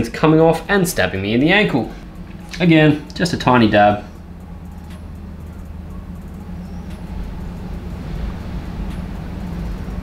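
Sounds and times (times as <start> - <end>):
low mechanical hum with hiss: 0.0 - 10.0.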